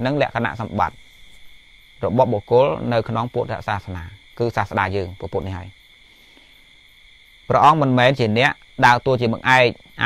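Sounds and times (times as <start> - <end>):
man talking: 0.0 - 1.0, 2.0 - 5.8, 7.5 - 9.8
faint high-pitched whine: 0.0 - 10.0.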